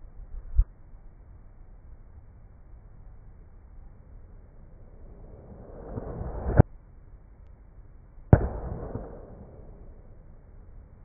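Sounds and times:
reversed noisy swell: 4.4 - 6.6
sudden bang: 8.4 - 9.8.

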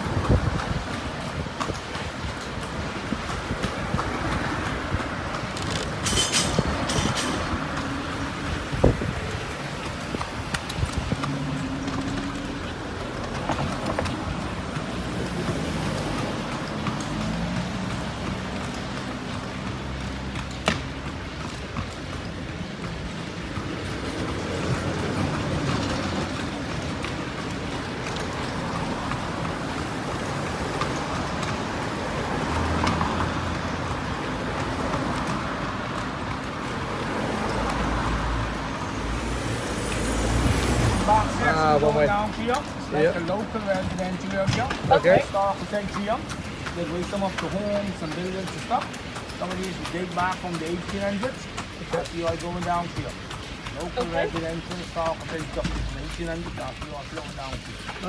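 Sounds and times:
carriage wheels on road: 0.0 - 58.0
horse hooves: 0.0 - 58.0
passing motor traffic: 0.0 - 58.0
vehicle engine hum: 0.0 - 58.0.

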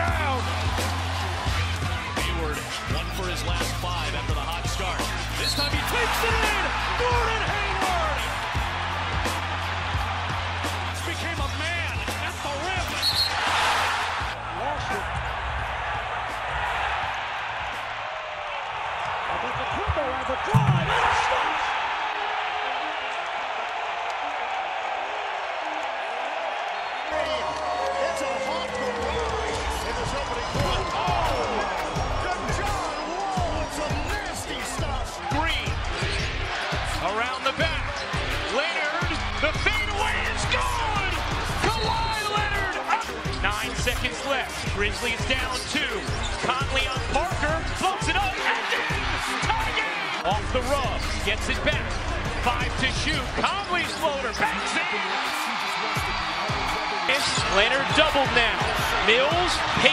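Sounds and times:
hip-hop music with bass beat: 0.0 - 18.0, 30.0 - 59.9
arena crowd noise: 0.0 - 59.9
loud thump: 20.6 - 21.2.

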